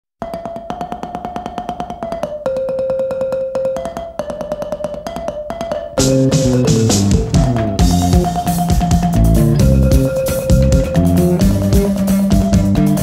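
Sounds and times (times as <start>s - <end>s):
mbira plucked notes: 0.2s - 13.0s.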